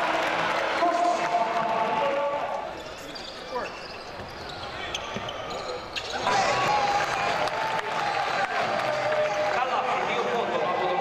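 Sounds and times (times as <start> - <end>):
voices from stands and court: 0.0 - 11.0
shoe squeaks: 2.7 - 6.6.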